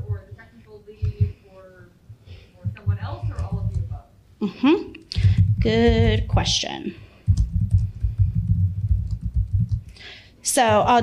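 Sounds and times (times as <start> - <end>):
laptop keyboard typing: 2.8 - 4.0, 5.2 - 6.5, 7.1 - 10.0.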